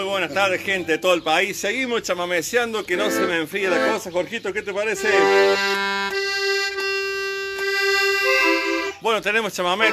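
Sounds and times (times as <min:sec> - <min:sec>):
piano accordion playing chords: 0:02.9 - 0:04.2, 0:04.8 - 0:09.9.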